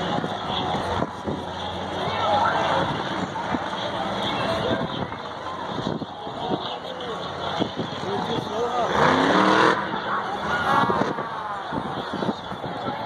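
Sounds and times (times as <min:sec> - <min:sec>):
nearby voices: 0:00.0 - 0:13.0
stadium crowd hubbub: 0:00.0 - 0:13.0
monster truck engine revving: 0:07.6 - 0:11.3.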